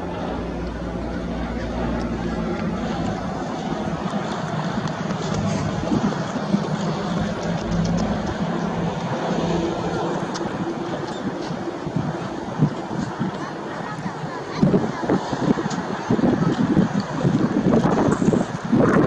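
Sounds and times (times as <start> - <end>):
light aircraft engine droning: 0.0 - 19.0.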